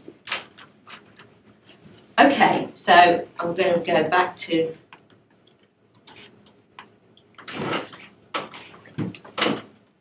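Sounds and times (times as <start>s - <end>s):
knocks and thumps in a room: 7.4s - 9.8s.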